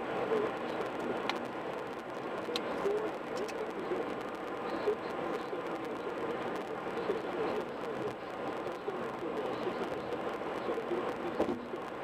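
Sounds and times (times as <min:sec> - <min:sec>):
road and tyre noise: 0:00.0 - 0:12.0.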